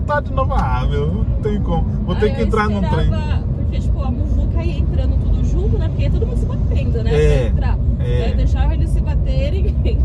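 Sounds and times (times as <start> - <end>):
car tyres and engine rumble: 0.0 - 10.0.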